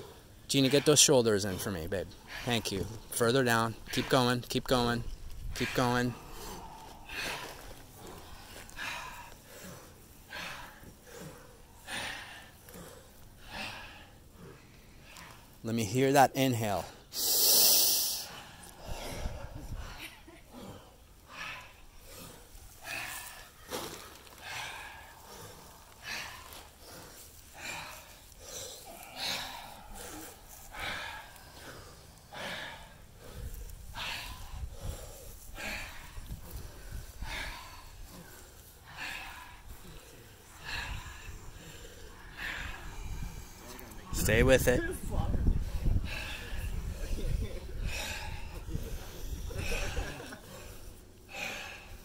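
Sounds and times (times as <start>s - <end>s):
people breathing deeply: 0.0s - 16.1s, 16.7s - 52.0s.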